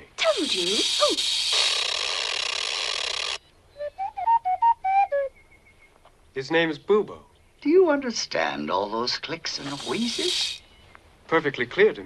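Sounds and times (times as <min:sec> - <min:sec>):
mechanical owl breathy wheeze: 0:00.4 - 0:03.4, 0:09.6 - 0:10.6.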